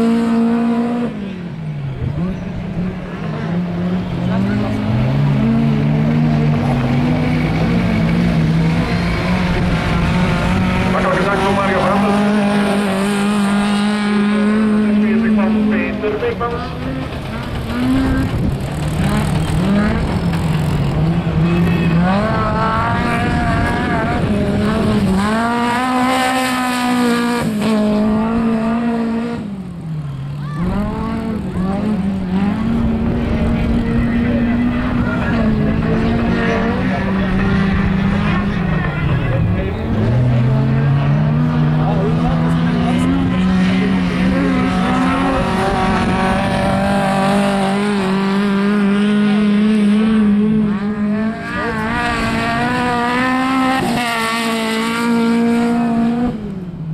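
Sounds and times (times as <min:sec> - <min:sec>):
race car engine revving: 0:00.0 - 0:56.9.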